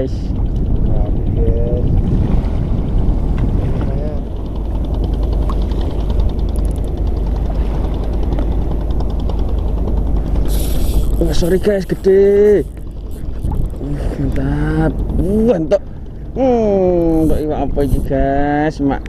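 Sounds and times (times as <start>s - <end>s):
choppy sea water: 0.0s - 19.0s
wind buffeting microphone: 0.0s - 19.0s
fishing reel ticking: 4.2s - 19.0s.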